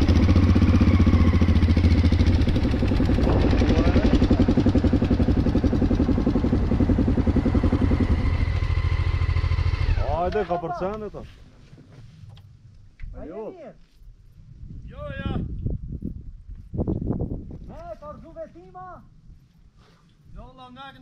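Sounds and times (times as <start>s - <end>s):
motorcycle engine running: 0.0s - 10.6s.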